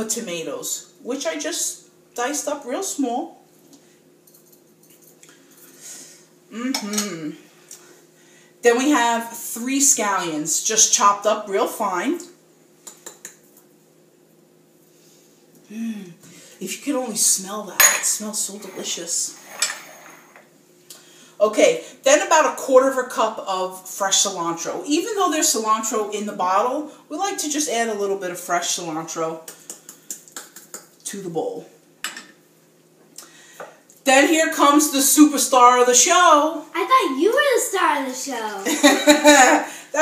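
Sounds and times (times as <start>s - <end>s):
kitchen utensils clinking: 17.8s - 20.4s.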